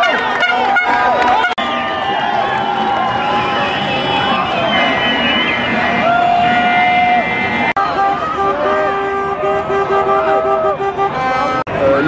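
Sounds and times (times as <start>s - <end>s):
higher car horn tones: 0.0s - 11.7s.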